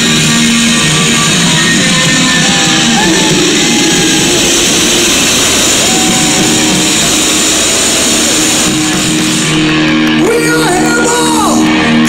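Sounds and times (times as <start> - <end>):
live rock band playing loudly: 0.0 - 12.0.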